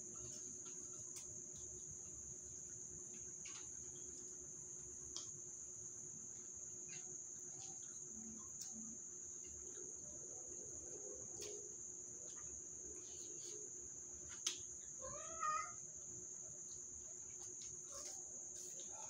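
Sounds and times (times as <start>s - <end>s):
crickets trilling: 0.0s - 19.0s
cat meowing: 15.0s - 15.8s.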